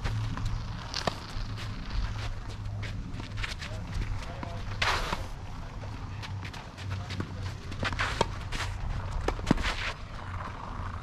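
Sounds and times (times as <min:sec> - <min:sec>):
low wind rumble: 0:00.0 - 0:11.0
racket hitting tennis ball: 0:00.4 - 0:01.3, 0:04.3 - 0:05.4, 0:07.1 - 0:10.0
shoes scuffing on clay: 0:06.2 - 0:10.0.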